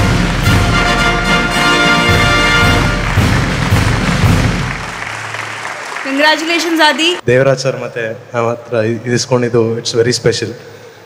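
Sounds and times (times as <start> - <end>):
event music with beat: 0.0 - 5.8
audience applauding: 0.0 - 7.2.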